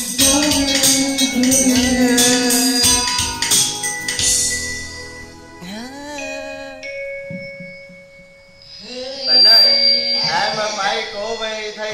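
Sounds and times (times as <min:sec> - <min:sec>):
karaoke backing track: 0:00.0 - 0:11.9
long held electronic note: 0:00.1 - 0:11.9.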